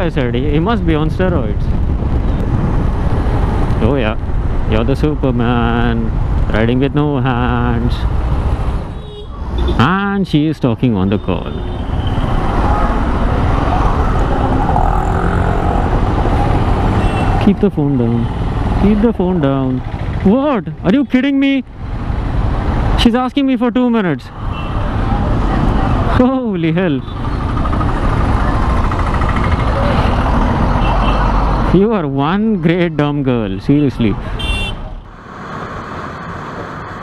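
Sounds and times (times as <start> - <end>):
road and traffic noise: 0.0 - 37.0
motorcycle engine rumble: 11.1 - 22.4, 24.8 - 33.2
motorcycle engine running: 27.1 - 30.6.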